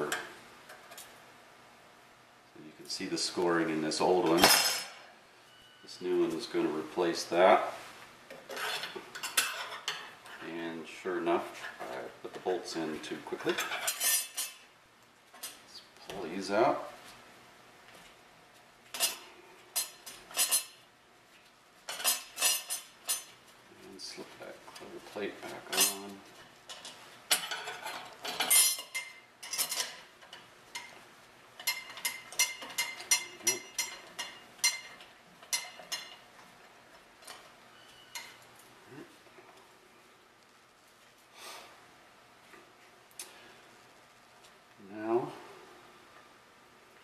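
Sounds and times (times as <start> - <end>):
metal bolts clinking against metal: 26.7 - 30.9.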